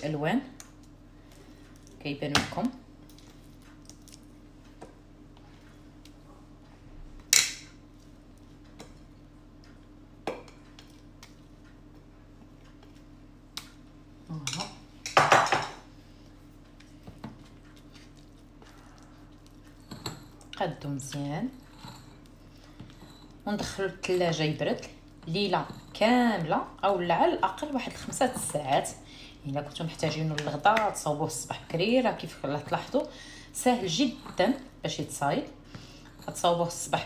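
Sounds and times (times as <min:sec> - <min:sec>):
faint steady hum: 0:00.0 - 0:37.0
utensil scraping a bowl: 0:33.8 - 0:34.8.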